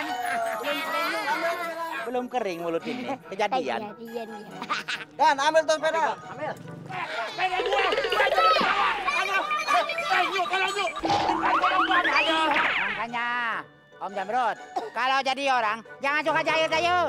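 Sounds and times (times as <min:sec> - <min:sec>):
background music: 0:00.0 - 0:17.0
springy cartoon boings: 0:07.6 - 0:08.9, 0:10.8 - 0:13.0.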